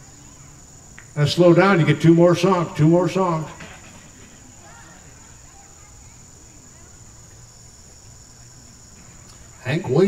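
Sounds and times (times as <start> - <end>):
crickets trilling: 0.0 - 10.0.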